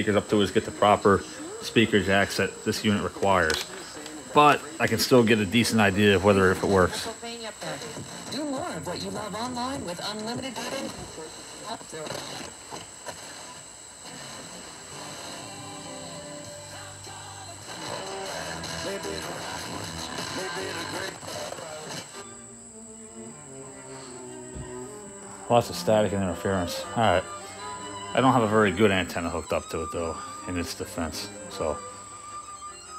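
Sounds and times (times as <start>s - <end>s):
radio voice: 0.0s - 9.6s, 17.9s - 22.1s, 25.5s - 27.3s, 28.2s - 31.8s
radio music: 0.0s - 32.9s
radio static: 0.0s - 32.9s
thin high tone: 22.2s - 32.9s.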